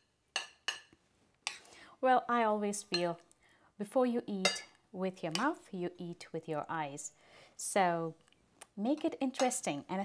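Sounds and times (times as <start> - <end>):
metal spoon clinking on ceramic plate: 0.4 - 1.6, 4.4 - 5.5.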